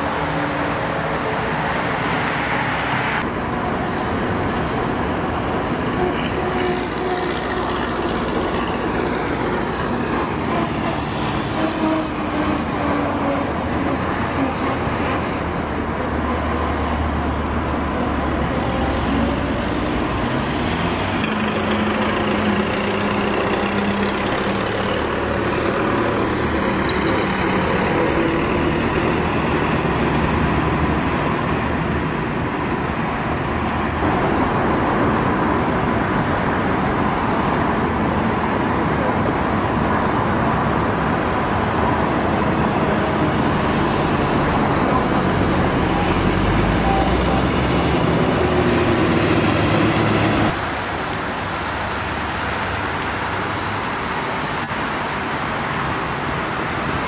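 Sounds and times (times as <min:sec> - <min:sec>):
heavy vehicle engine rumble: 0:00.0 - 0:56.4
cars driving past: 0:07.3 - 0:57.0.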